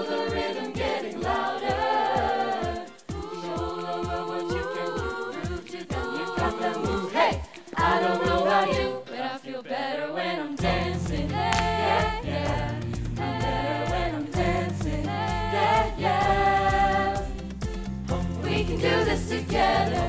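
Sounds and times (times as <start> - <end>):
choir singing in unison: 0.0 - 20.0
pop backing of bass and drums: 10.6 - 20.0.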